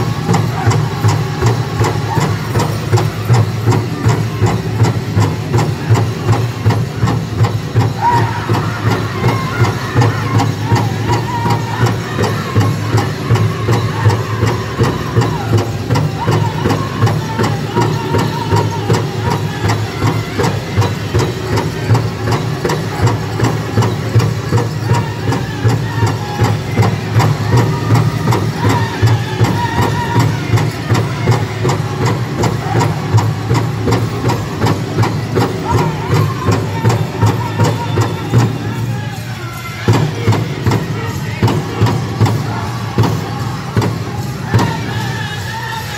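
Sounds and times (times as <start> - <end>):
singers' high voices: 0.0 - 45.9.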